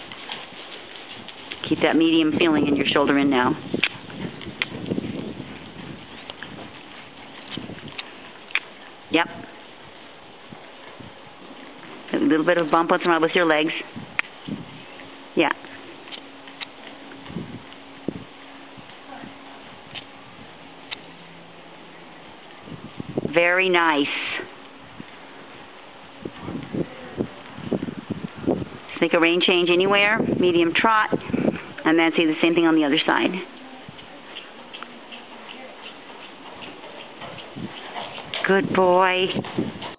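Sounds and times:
horse hoofbeats on soft footing: 0.0s - 23.2s, 30.8s - 39.9s
steady low hum: 0.0s - 39.9s.

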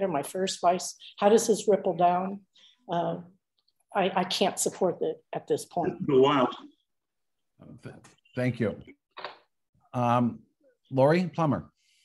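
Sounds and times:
person speaking over video call: 0.0s - 6.8s, 7.5s - 12.0s.

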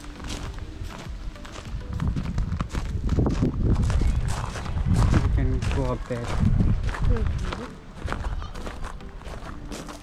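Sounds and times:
faint music: 0.0s - 10.0s
footsteps on gravel: 0.0s - 10.0s.

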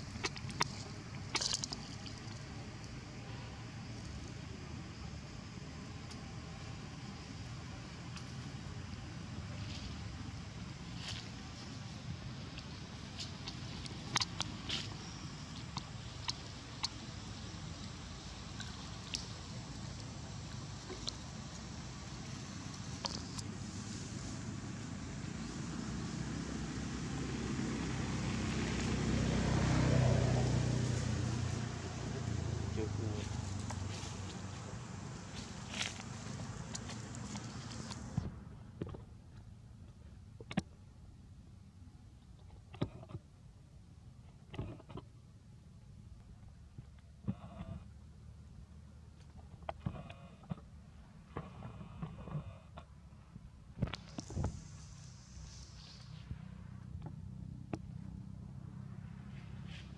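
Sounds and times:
steady low rumble: 0.0s - 42.3s
motor vehicle passing: 20.6s - 38.5s, 54.3s - 59.9s.

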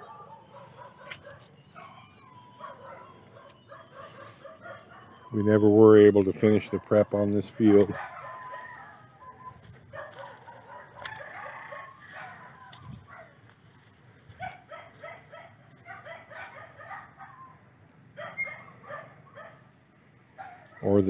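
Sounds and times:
chickens clucking: 0.0s - 17.3s
rooster crowing: 8.2s - 9.4s, 10.6s - 13.0s.

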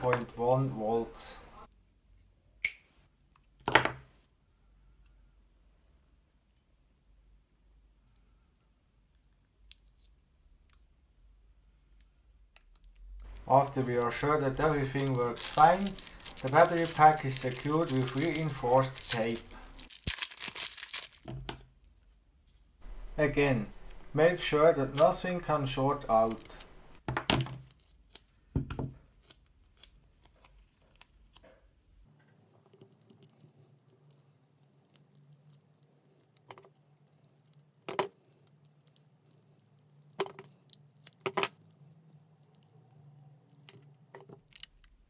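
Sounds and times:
tape crinkle: 12.6s - 21.4s
faint steady hum: 21.9s - 27.0s.

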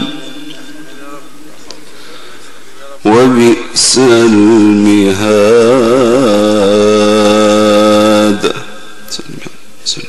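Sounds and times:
man chanting melodic recitation: 2.8s - 10.0s.

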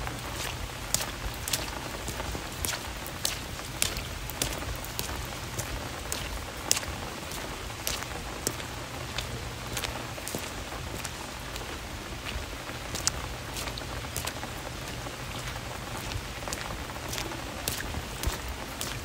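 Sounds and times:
raindrops tapping close by: 0.0s - 19.0s
steady rain hiss: 0.0s - 19.0s.

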